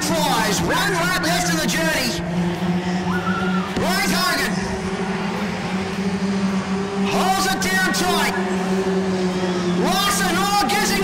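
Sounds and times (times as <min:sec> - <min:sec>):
race car engines droning: 0:00.0 - 0:11.0
race car engines revving: 0:00.0 - 0:11.0.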